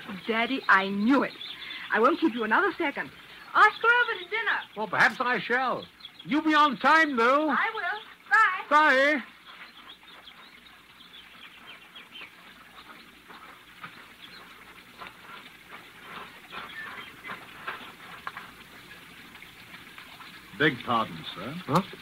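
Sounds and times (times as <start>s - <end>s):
birds chirping faintly: 0.0s - 22.0s.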